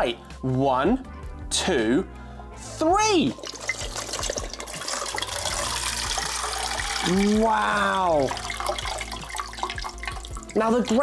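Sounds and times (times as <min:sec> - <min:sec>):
water trickling into a bowl: 0:03.2 - 0:11.0.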